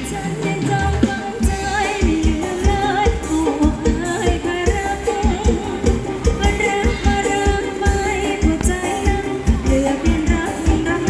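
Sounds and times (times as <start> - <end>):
live band music: 0.0 - 11.0
person singing: 0.0 - 11.0
steady drum beat: 0.0 - 11.0.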